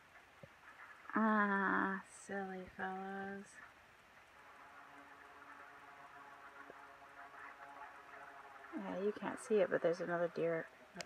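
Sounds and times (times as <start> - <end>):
faint low hum: 0.0 - 11.0
soft steady hiss: 0.0 - 11.0.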